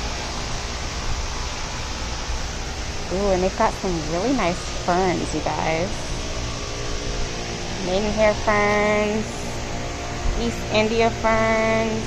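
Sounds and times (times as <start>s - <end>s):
ventilation fan noise: 0.0s - 12.0s.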